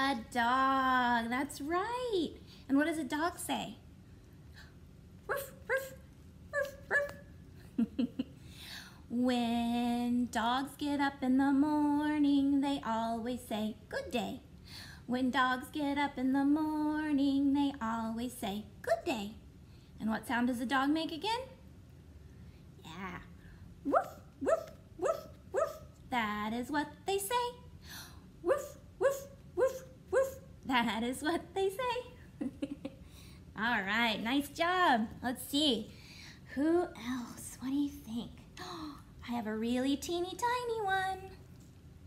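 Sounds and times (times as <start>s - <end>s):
woman singing barked woofs: 5.3s - 7.2s, 28.4s - 30.5s
small dog yipping barks: 23.9s - 25.9s.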